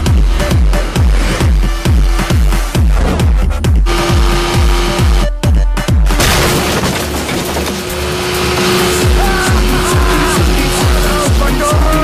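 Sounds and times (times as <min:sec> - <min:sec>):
dance music: 0:00.0 - 0:06.2, 0:08.0 - 0:12.0
thumping bass beat: 0:00.0 - 0:06.2, 0:07.8 - 0:12.0
motorboat engine running: 0:00.0 - 0:12.0.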